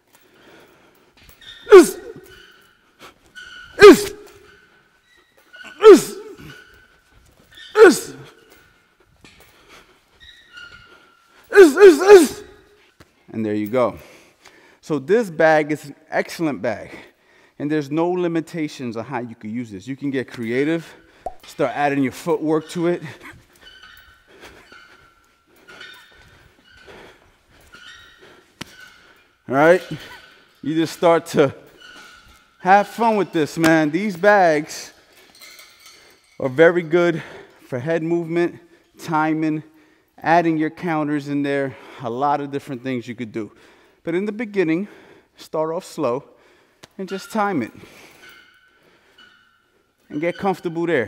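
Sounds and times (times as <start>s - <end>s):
boxer grunting exhales: 1.7s - 2.3s, 5.8s - 6.6s.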